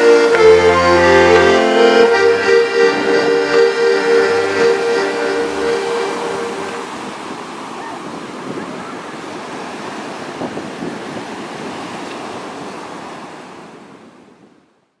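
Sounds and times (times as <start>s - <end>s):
ocean waves breaking: 0.0s - 14.5s.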